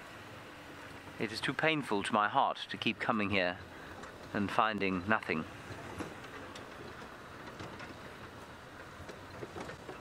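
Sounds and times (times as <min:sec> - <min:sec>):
vehicle engine and road rumble: 0:00.0 - 0:10.0
light clicks and rattles: 0:03.8 - 0:10.0.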